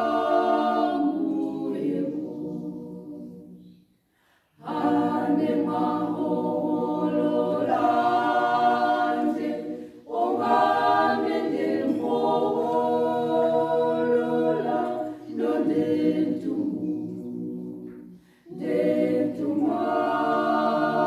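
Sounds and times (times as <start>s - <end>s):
women's choir singing a cappella: 0.0s - 21.0s
singers breathing: 3.7s - 4.6s, 9.7s - 10.1s, 18.1s - 18.5s.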